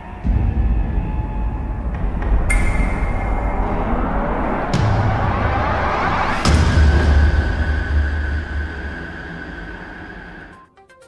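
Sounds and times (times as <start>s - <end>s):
deep low rumble: 0.1s - 10.6s.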